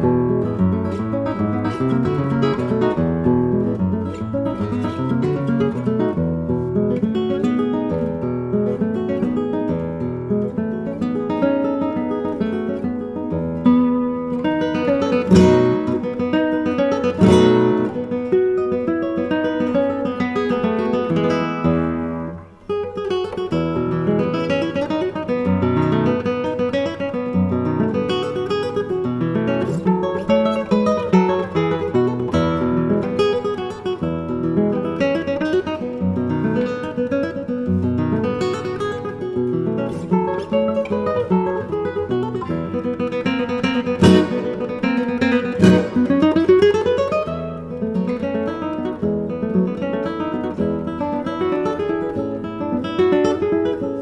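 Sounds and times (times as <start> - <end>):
classical guitar playing: 0.0 - 54.0
struck guitar chords: 39.4 - 47.7
guitar string slide: 43.9 - 46.5.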